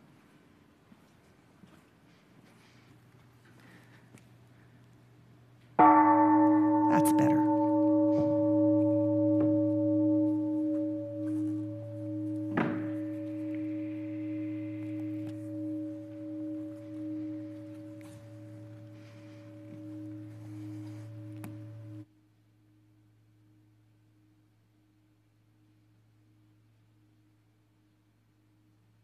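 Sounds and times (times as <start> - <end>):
singing bowl ringing: 5.8 - 22.1
knock: 12.5 - 13.0.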